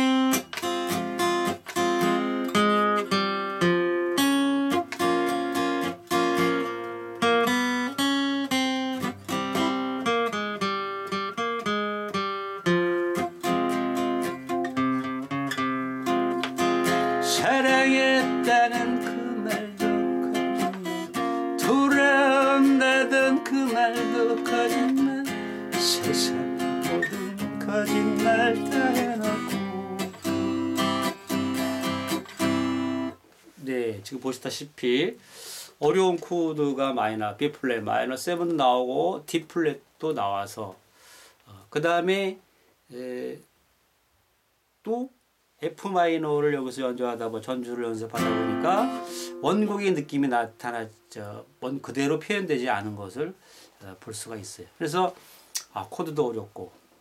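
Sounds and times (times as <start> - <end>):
acoustic guitar strumming: 0.0 - 33.2, 47.8 - 51.2.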